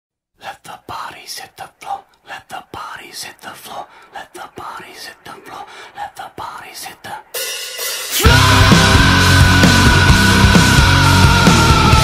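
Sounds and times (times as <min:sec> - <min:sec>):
person whispering: 0:00.4 - 0:07.4.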